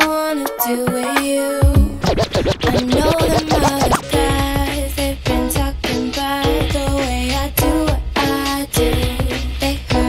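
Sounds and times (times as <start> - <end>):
hip-hop music: 0.0 - 10.0
dj scratching: 0.9 - 4.6.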